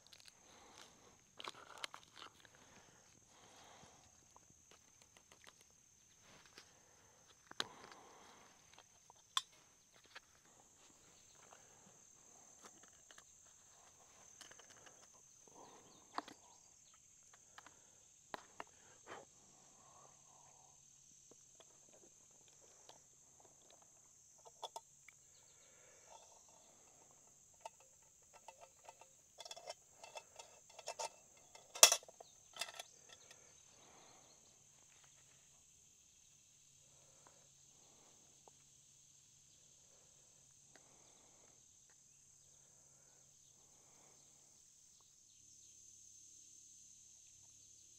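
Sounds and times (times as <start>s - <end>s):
crickets chirping: 0.0s - 47.9s
metal cookware clinking: 28.4s - 32.8s.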